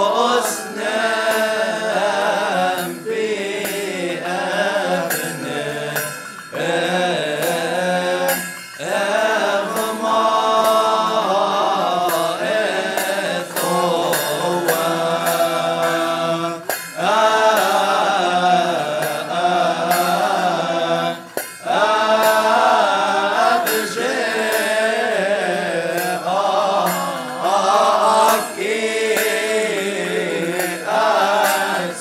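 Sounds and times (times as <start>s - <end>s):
choir chanting a hymn: 0.0s - 32.0s.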